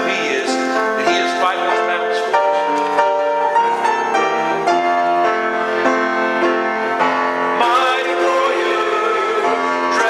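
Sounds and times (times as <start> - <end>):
instrumental held chords: 0.0 - 10.0.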